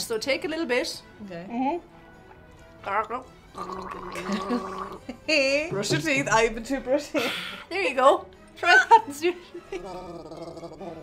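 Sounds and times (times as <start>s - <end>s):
woman gargling: 3.6s - 5.1s, 9.8s - 11.0s.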